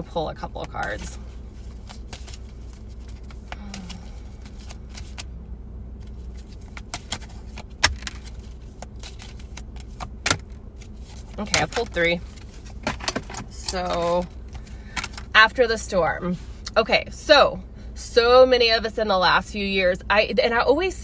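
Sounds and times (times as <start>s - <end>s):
car cabin hum: 0.0s - 21.0s
cards shuffled by hand: 0.6s - 5.3s, 6.0s - 13.0s.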